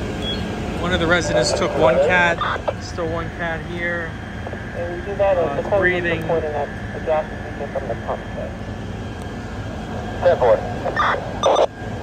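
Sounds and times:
fire engines running: 0:00.0 - 0:12.0
voices: 0:00.4 - 0:12.0.

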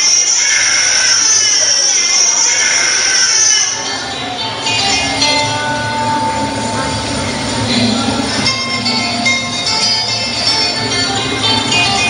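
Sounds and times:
long held tone: 0:00.0 - 0:12.0.

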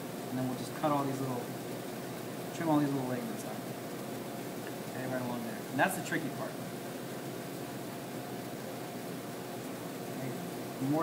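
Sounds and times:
room noise hiss: 0:00.0 - 0:11.0.

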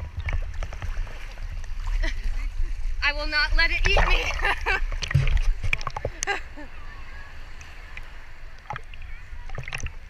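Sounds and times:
surf washing: 0:00.0 - 0:10.0
water sloshing against camera: 0:00.0 - 0:10.0.

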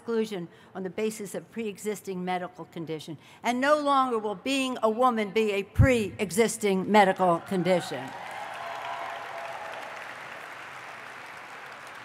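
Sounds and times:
audience applauding: 0:08.1 - 0:12.0.

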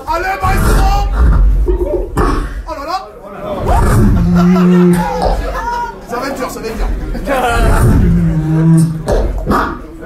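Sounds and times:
buzzing low vocal hum: 0:03.7 - 0:05.5, 0:07.6 - 0:09.8
percussive mouth sounds: 0:07.7 - 0:09.9.

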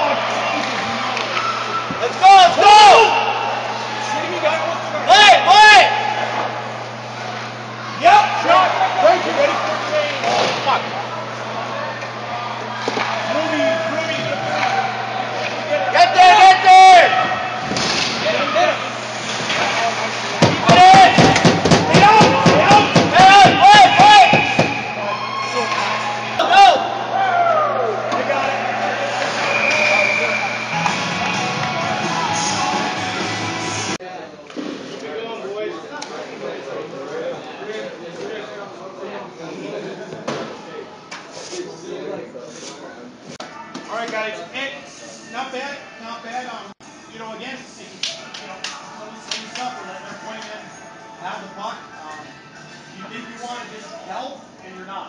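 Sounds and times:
players shouting: 0:00.0 - 0:33.3
steady hum: 0:00.0 - 0:34.0.

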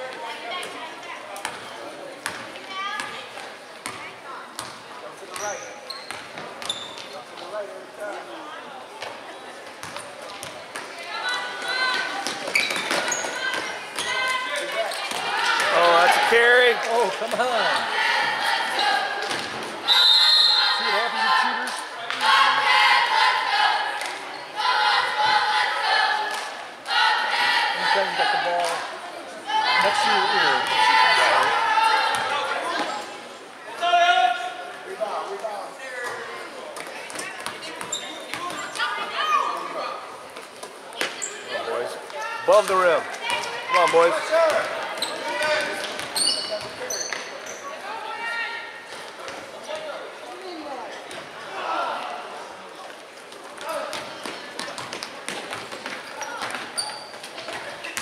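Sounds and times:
shoe squeaks: 0:05.3 - 0:07.2, 0:12.4 - 0:14.3, 0:37.8 - 0:38.8, 0:41.2 - 0:41.5, 0:45.0 - 0:45.4, 0:46.1 - 0:47.8, 0:56.1 - 0:58.0
spectators shouting: 0:29.5 - 0:32.5.

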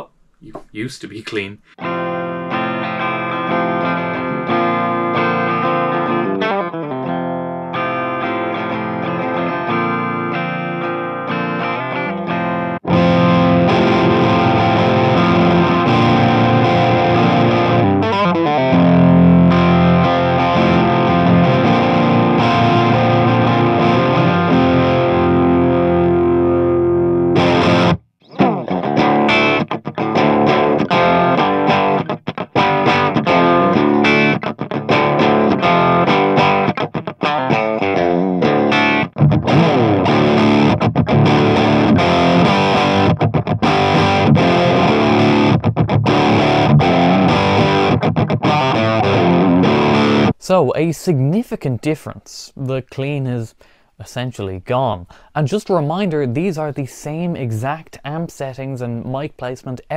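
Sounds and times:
choppy guitar rhythm chords: 0:01.3 - 0:50.4
distorted electric guitar chords: 0:01.8 - 0:50.4.

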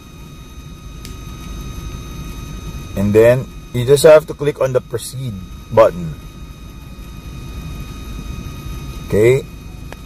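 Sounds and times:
low background rumble: 0:00.0 - 0:10.0.

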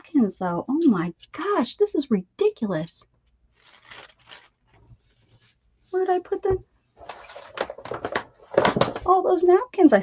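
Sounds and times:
paper envelope rustling: 0:03.5 - 0:05.6.

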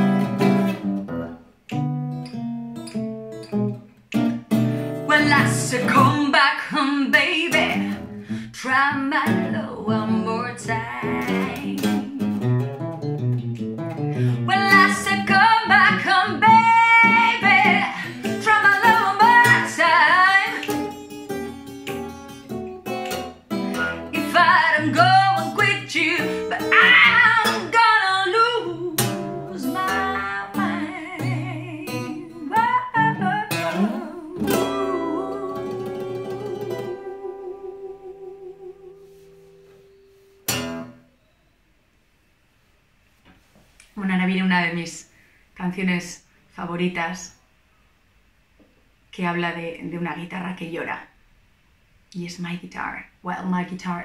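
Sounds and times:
fingerpicked acoustic guitar: 0:00.0 - 0:41.1
woman singing: 0:05.0 - 0:12.5, 0:14.2 - 0:20.7, 0:24.1 - 0:39.4.

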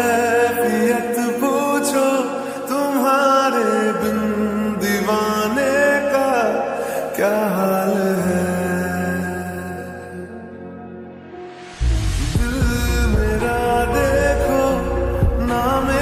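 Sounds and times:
sustained bass: 0:11.4 - 0:16.0
person singing long bending notes: 0:11.8 - 0:16.0.

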